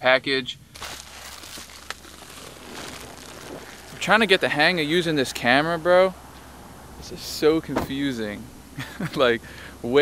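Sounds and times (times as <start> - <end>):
plastic bag rustling: 0.7 - 5.0.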